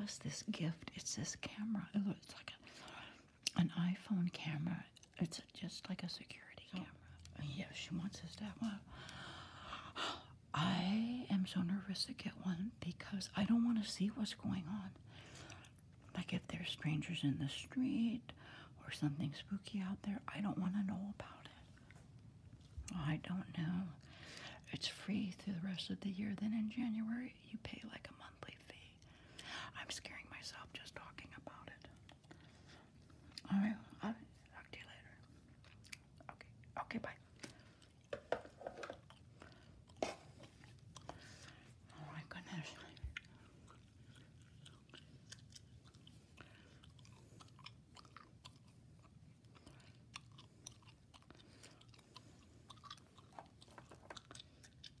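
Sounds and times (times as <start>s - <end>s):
soft whispering: 0.0s - 9.0s, 9.7s - 22.0s, 22.8s - 35.6s, 36.2s - 37.9s, 39.4s - 45.1s
gum chewing mouth clicks: 42.9s - 55.0s.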